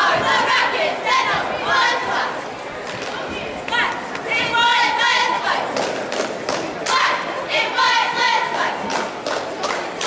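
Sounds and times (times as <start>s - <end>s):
loud voices calling out: 0.0s - 10.0s.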